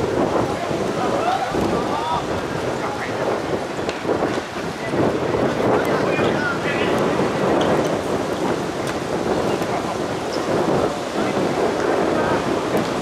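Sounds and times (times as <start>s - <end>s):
wind buffeting microphone: 0.0s - 13.0s
faint shouts of players: 1.0s - 2.3s.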